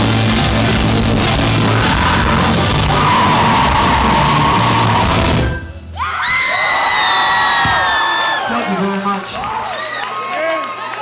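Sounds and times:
live band playing loudly: 0:00.0 - 0:05.8
audience whooping and yelling: 0:01.4 - 0:11.0.

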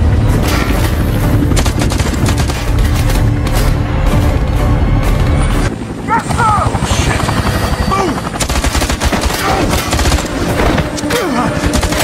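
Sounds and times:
helicopter: 0:00.0 - 0:12.0.

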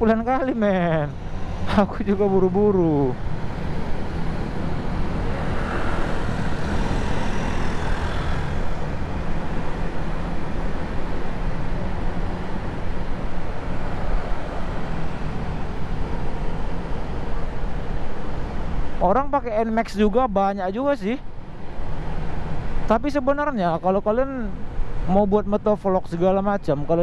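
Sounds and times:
wind rushing over microphone: 0:00.0 - 0:19.0.

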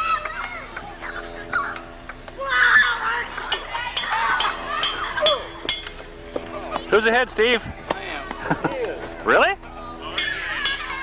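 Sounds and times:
children and adults chattering: 0:00.0 - 0:11.0
ping-pong ball hitting paddles: 0:00.2 - 0:05.0.

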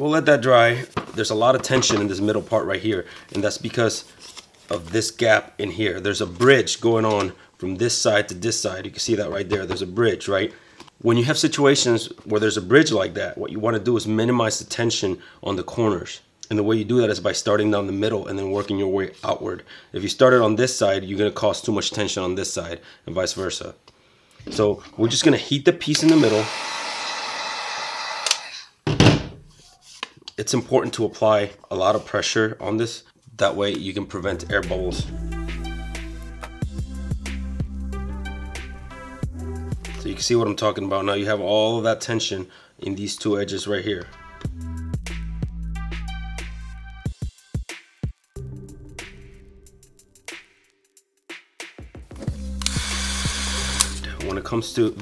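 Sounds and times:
heat gun blowing: 0:25.9 - 0:28.8, 0:52.4 - 0:54.2.

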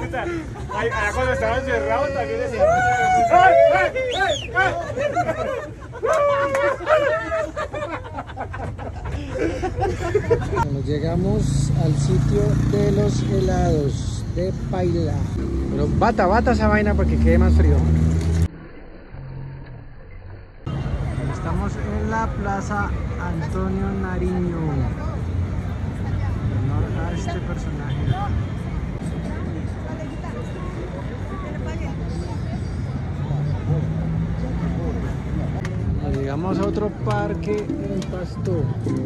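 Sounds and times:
people's voices: 0:00.0 - 0:18.1, 0:20.7 - 0:39.0
traffic rumble: 0:00.0 - 0:39.0.

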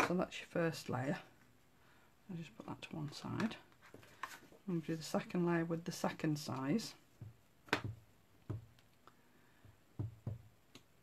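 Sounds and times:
stamp block knocking on tabletop: 0:07.2 - 0:08.7, 0:09.6 - 0:10.5.

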